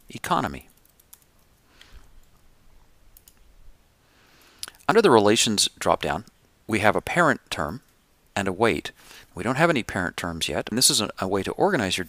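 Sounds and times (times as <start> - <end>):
man speaking: 0.0 - 0.7, 4.8 - 7.8, 8.4 - 12.0
computer mouse clicks: 0.7 - 2.4, 3.2 - 3.5.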